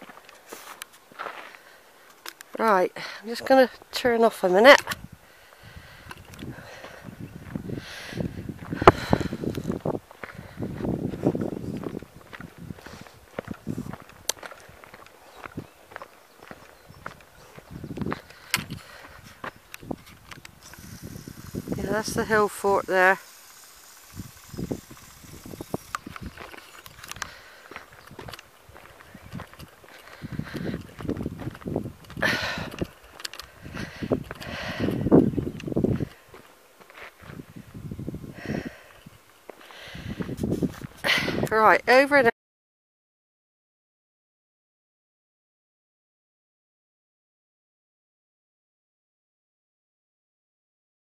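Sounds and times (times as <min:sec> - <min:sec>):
footsteps on dirt track: 0:00.0 - 0:42.2
handheld camera rubbing: 0:19.2 - 0:27.3, 0:40.3 - 0:41.0.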